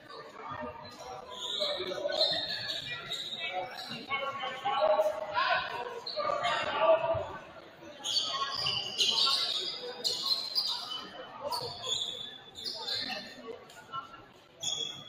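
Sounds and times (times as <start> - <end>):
voices echoing: 0.0 - 15.0.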